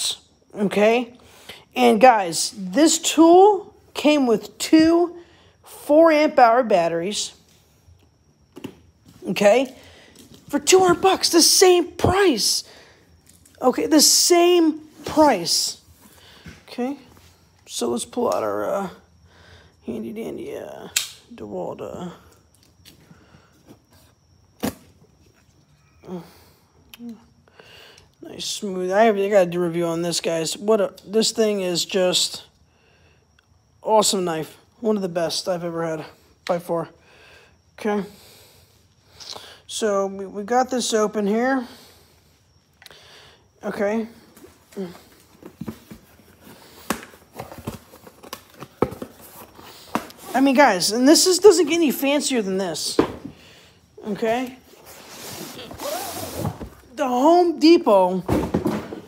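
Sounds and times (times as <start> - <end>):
sharp snap: 21.0 - 21.2.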